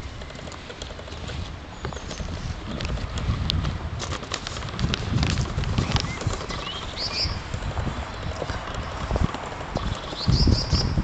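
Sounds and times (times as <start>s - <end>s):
handheld camera rumbling: 0.0s - 11.0s
small bird chirping: 5.8s - 7.5s, 9.8s - 11.0s.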